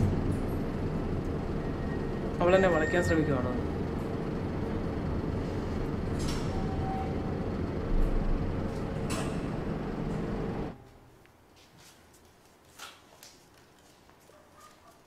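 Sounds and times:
lift mechanical hum: 0.0s - 11.3s.

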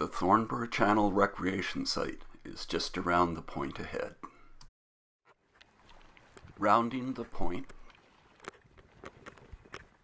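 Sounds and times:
paddle clicks and drips: 5.3s - 10.0s.

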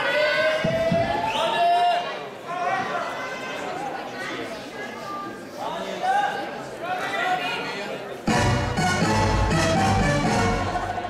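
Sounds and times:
people chattering in a hall: 0.0s - 11.0s.

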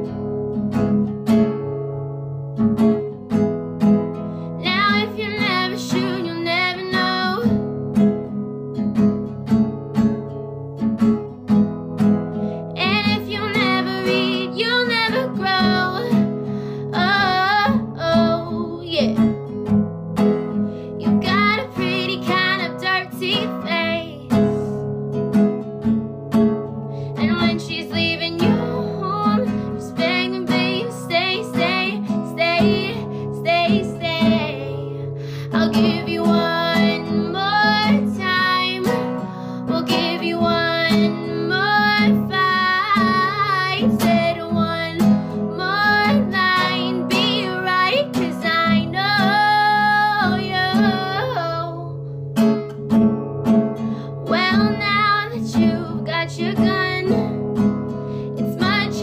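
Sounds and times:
acoustic guitar strumming: 0.0s - 59.0s
woman singing: 4.6s - 7.7s, 12.7s - 19.4s, 21.0s - 24.8s, 27.1s - 52.0s, 54.2s - 59.0s.

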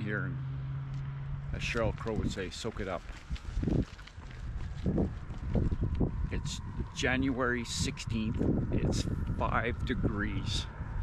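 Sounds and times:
wind rumbling on microphone: 1.3s - 11.0s.

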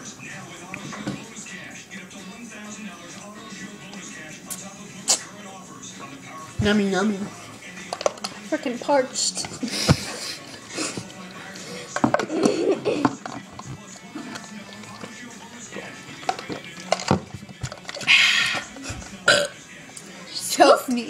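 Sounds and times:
girl burping: 19.3s - 19.5s.

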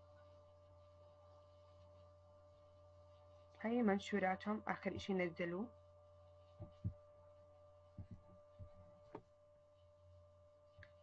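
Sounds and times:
faint electrical hum: 0.0s - 11.0s
soft low thuds: 6.6s - 7.1s, 7.9s - 9.3s.

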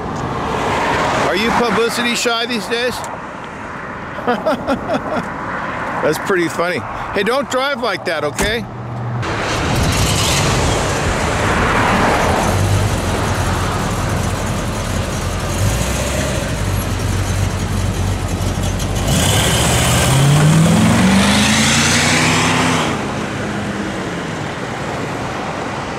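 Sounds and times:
road traffic noise: 0.0s - 25.9s
car engine accelerating: 9.2s - 23.7s.

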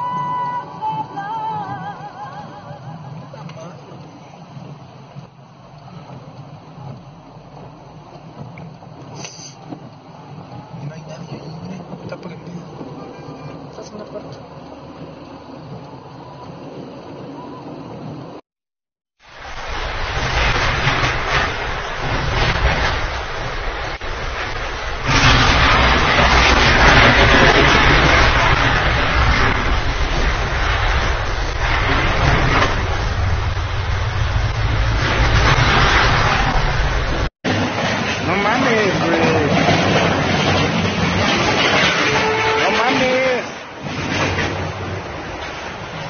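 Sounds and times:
street noise: 0.0s - 18.4s, 19.2s - 46.0s
heavy rain and wind hiss: 0.1s - 18.4s, 19.2s - 46.0s
low rumble: 19.3s - 41.6s.

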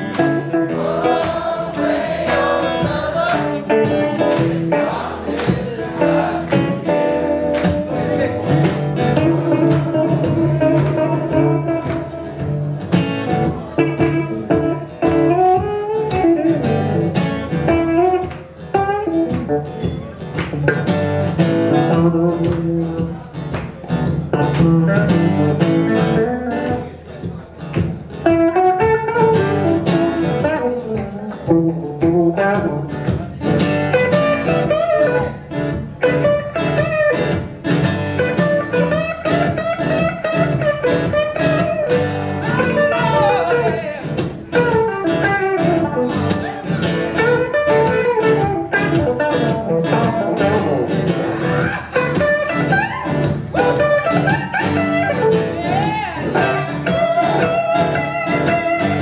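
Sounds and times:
electric guitar lead line: 0.0s - 26.9s, 28.2s - 59.0s
strummed acoustic guitar: 0.0s - 59.0s.

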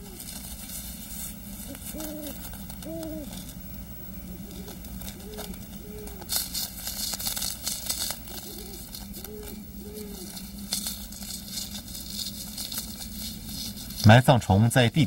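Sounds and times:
owl hooting: 0.0s - 14.3s
crackling and rustling clicks: 0.0s - 14.4s.

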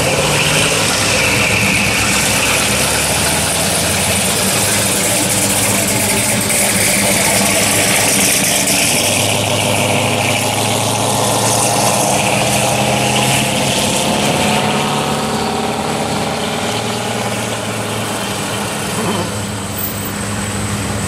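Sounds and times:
vehicle engines driving past: 0.0s - 21.0s.

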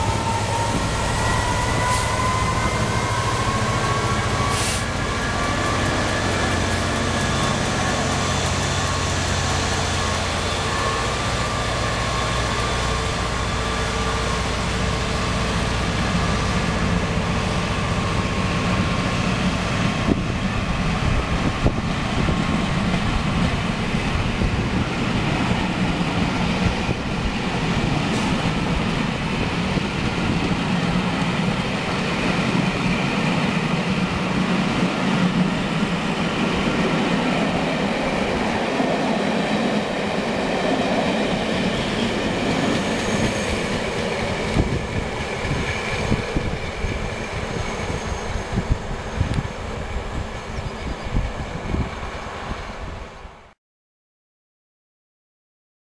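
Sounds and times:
train passing at speed: 0.0s - 53.6s.

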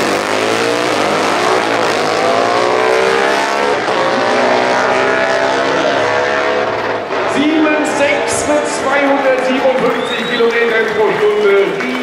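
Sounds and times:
man talking over loudspeakers: 7.3s - 12.0s.

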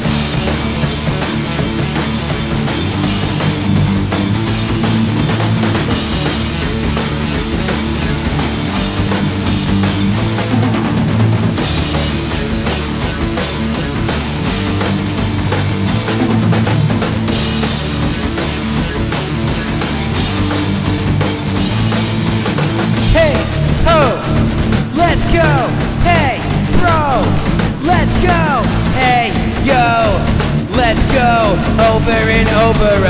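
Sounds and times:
acoustic drum kit with cymbals: 0.0s - 33.0s
rock music with guitar: 0.0s - 33.0s.

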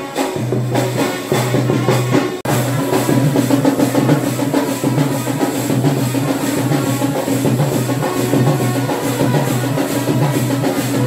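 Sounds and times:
fast temple drumming: 0.0s - 11.0s.

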